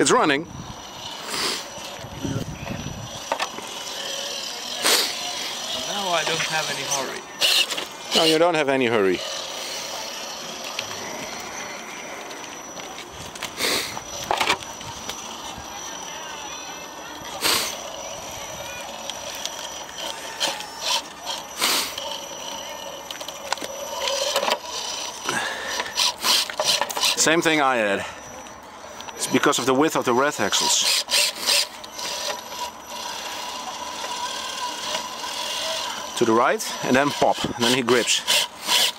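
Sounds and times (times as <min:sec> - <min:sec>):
murmur of voices: 0:00.0 - 0:38.9
rc car crawling over rocks: 0:00.0 - 0:38.9.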